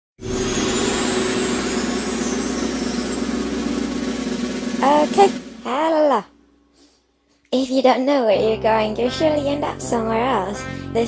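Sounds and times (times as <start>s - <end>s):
electronic drone: 0.2s - 6.4s
low held tone: 0.2s - 6.6s.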